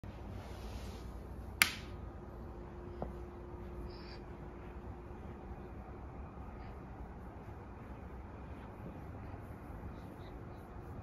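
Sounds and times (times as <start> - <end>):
room noise: 0.0 - 11.0
sharp snap: 1.6 - 2.0.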